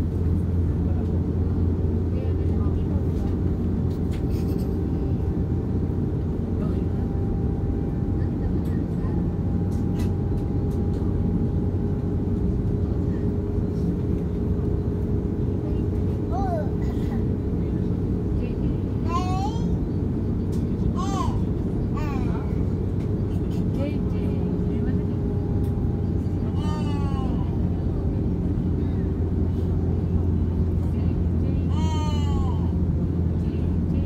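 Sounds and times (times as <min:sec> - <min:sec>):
airplane cabin rumble: 0:00.0 - 0:34.0
passengers talking: 0:00.0 - 0:34.0.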